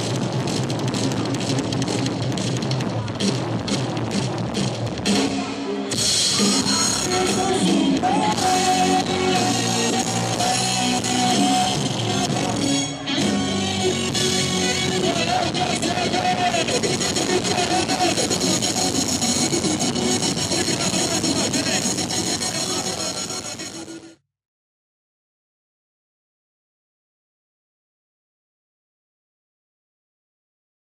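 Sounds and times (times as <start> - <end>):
rock band playing live: 0.0 - 23.7.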